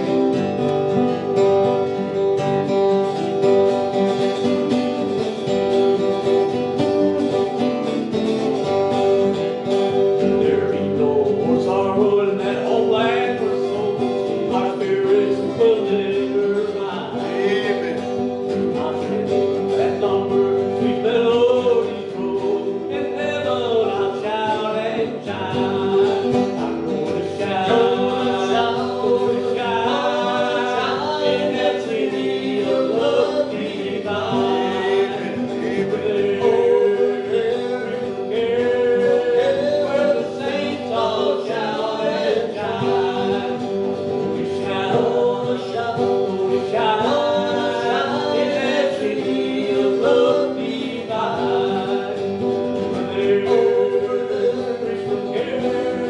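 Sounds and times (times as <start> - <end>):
acoustic and electric guitar: 0.0 - 56.0
gospel hymn singing: 0.0 - 56.0.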